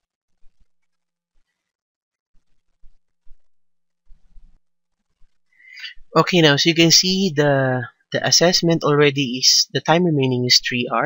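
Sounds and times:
soft rustle: 2.3s - 5.7s
person speaking: 5.6s - 11.0s.

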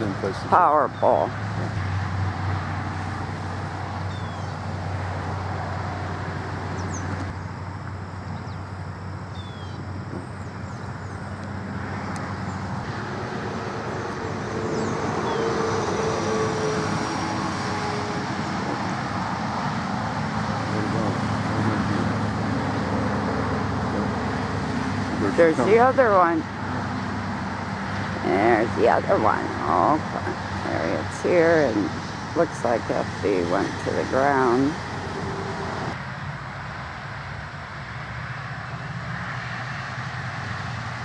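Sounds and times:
road traffic noise: 0.0s - 41.0s.

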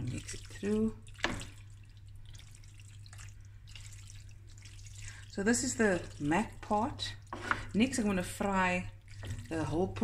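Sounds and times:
wet squelching and dripping: 0.0s - 7.8s, 8.5s - 10.0s.

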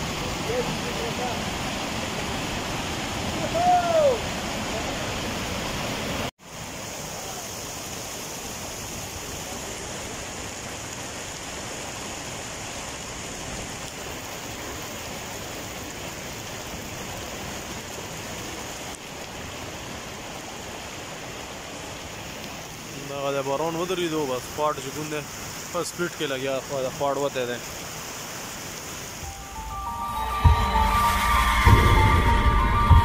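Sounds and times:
rain falling on wet ground: 0.0s - 33.0s
running rainwater: 0.0s - 33.0s.

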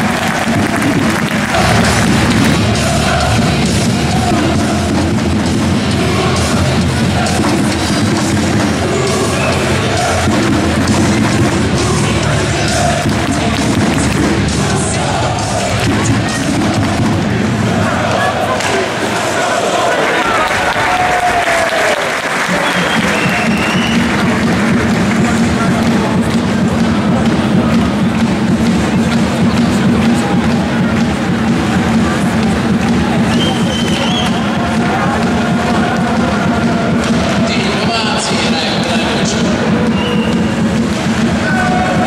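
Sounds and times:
steady low drone: 0.0s - 19.2s
crowd clapping and cheering: 0.0s - 42.0s
crowd voices: 0.0s - 42.0s
music: 0.0s - 42.0s.

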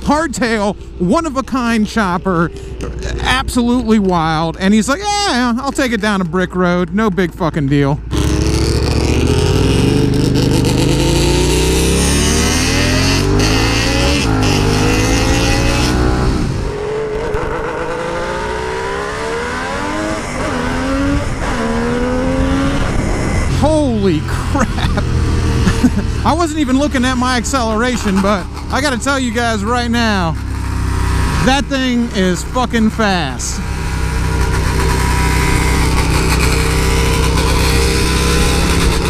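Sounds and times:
motorcycle engine accelerating: 0.0s - 39.0s.

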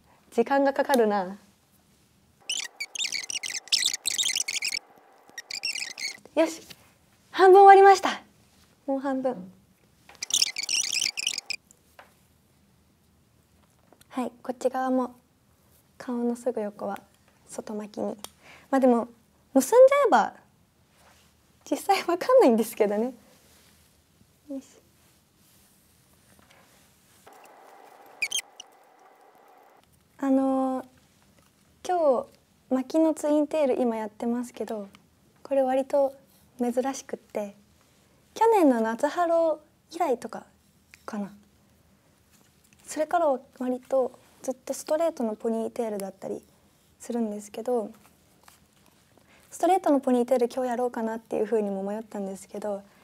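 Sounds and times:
faint room noise: 0.0s - 53.0s
high-pitched squeaky chatter: 2.4s - 4.8s, 5.4s - 6.2s, 10.2s - 11.6s, 28.2s - 28.8s.

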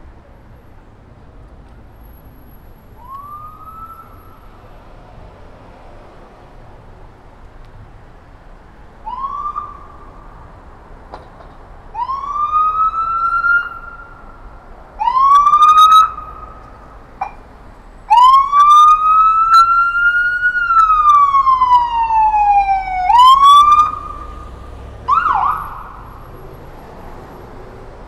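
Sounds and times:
emergency vehicle siren: 2.0s - 5.3s, 8.9s - 10.6s, 11.9s - 28.0s.

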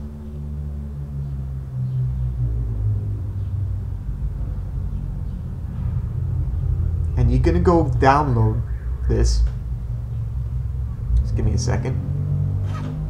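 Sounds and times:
low droning hum: 0.0s - 13.0s.

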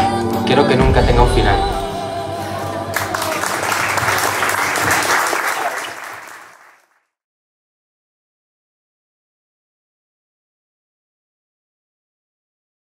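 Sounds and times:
music: 0.0s - 5.3s
crowd applauding: 2.0s - 7.0s.

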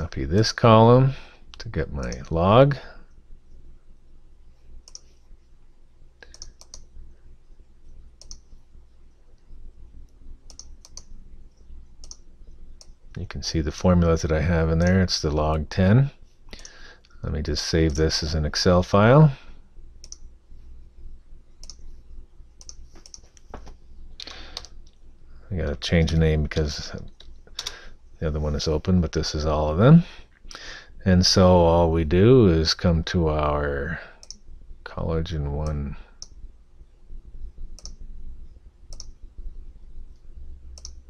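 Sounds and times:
faint low hum: 0.0s - 41.0s
computer mouse clicking: 4.8s - 5.2s, 6.2s - 6.9s, 8.2s - 8.6s, 9.4s - 13.0s, 20.0s - 20.3s, 21.6s - 21.9s, 22.6s - 25.0s, 34.2s - 34.4s, 37.7s - 38.0s, 38.9s - 39.2s, 40.1s - 41.0s
mouse and keyboard clicks: 6.2s - 6.9s, 22.6s - 23.8s.

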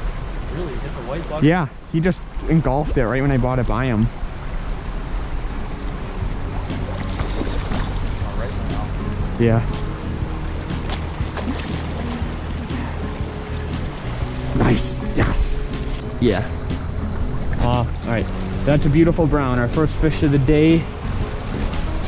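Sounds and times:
flowing stream: 0.0s - 22.0s.

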